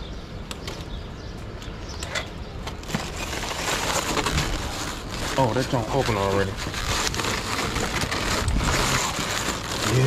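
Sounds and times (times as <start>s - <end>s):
plastic wrap crinkling: 2.8s - 10.0s.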